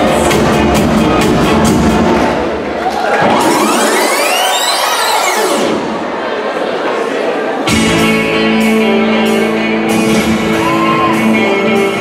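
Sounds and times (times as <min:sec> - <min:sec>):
dance music backing track: 0:00.0 - 0:06.2, 0:07.6 - 0:12.0
rising synth and noise sweep: 0:03.0 - 0:06.2.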